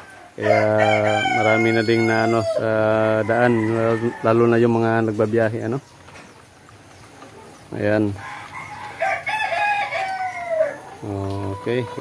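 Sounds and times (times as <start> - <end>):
rooster crowing: 0.0 - 4.6, 8.2 - 12.0.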